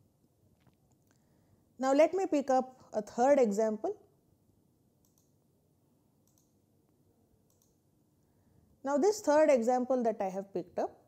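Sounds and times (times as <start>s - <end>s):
faint clicks: 5.0s - 5.4s, 6.2s - 7.8s.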